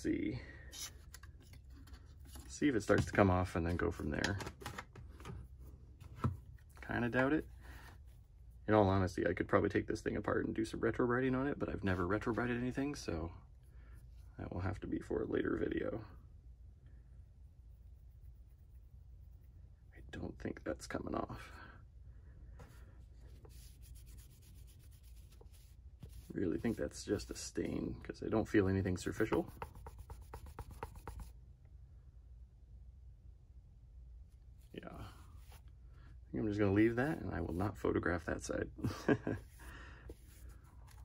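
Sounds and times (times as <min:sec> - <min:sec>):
low room hum: 0:00.0 - 0:41.0.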